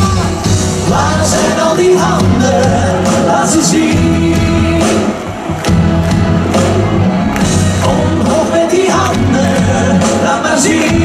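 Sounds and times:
crowd cheering: 0.0s - 11.0s
live pop band music: 0.0s - 11.0s.

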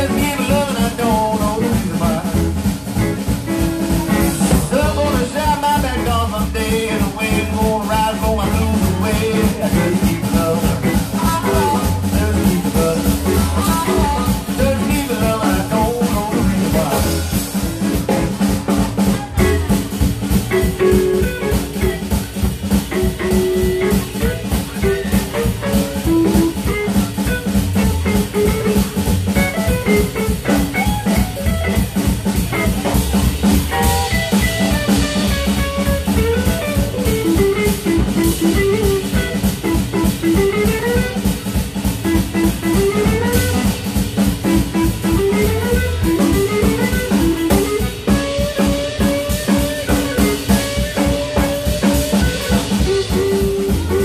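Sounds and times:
drum kit beat: 0.0s - 54.0s
electric guitar: 0.0s - 54.0s.

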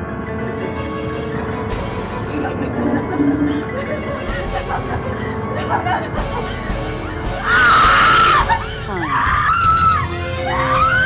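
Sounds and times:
film score music: 0.0s - 11.0s
woman shrieking: 7.3s - 11.0s.

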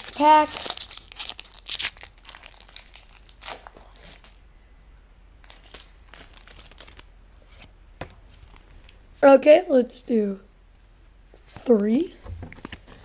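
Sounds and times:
foil wrapper crinkling: 0.0s - 4.3s, 5.4s - 7.1s.

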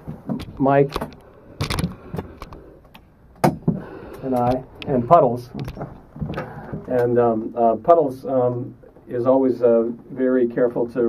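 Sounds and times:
soft handling clicks and knocks: 0.0s - 7.6s.

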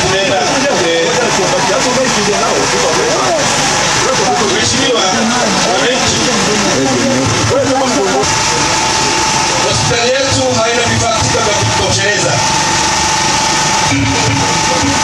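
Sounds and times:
steady background noise: 0.0s - 15.0s
man speaking into a microphone: 9.6s - 12.5s.

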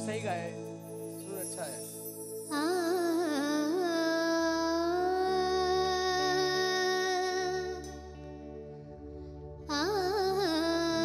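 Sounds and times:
light instrumental accompaniment: 0.0s - 11.0s
child singing into microphone: 2.5s - 8.2s, 9.7s - 11.0s.

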